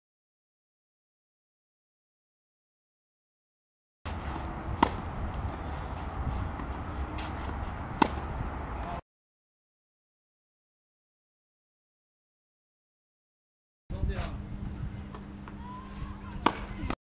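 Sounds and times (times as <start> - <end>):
racket hitting tennis ball: 4.1 - 8.9, 16.2 - 17.0
low outdoor rumble: 4.1 - 9.0.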